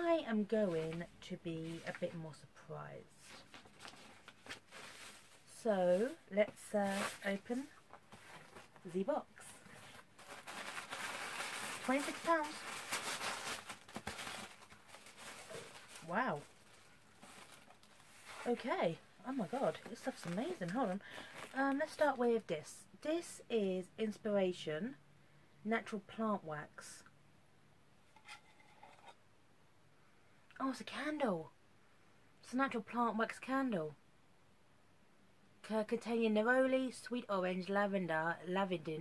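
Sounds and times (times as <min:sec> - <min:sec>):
paper and cardboard rustling: 0:03.2 - 0:22.2
tin lid scraping open: 0:28.2 - 0:29.2.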